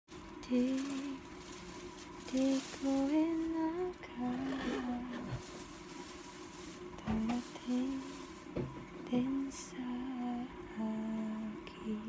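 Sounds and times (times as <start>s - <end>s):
person humming a slow tune: 2.3s - 5.4s, 9.1s - 12.0s.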